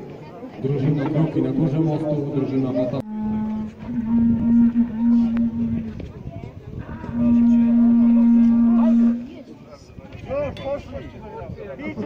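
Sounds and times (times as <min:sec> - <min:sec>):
horn blowing low note: 0:03.0 - 0:06.1, 0:06.9 - 0:09.4.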